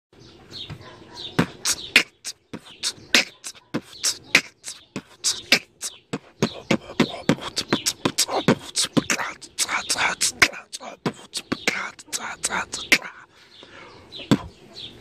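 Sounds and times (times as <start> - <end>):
beatboxing: 1.4 - 13.3, 14.2 - 14.6.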